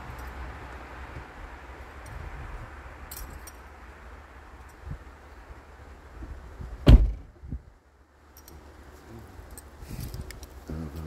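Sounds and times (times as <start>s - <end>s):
loud sharp thump: 6.8s - 7.3s.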